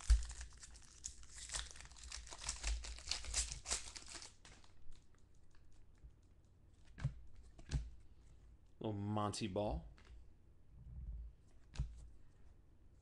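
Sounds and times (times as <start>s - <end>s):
card pack wrapper tearing: 0.0s - 4.7s.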